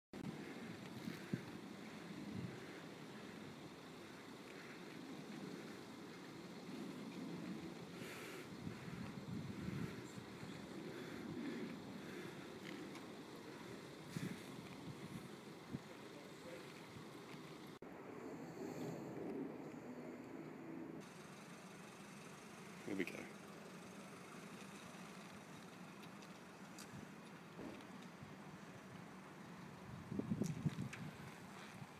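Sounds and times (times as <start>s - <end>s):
wind gusting over microphone: 0.2s - 2.8s, 6.8s - 12.2s, 29.8s - 31.9s.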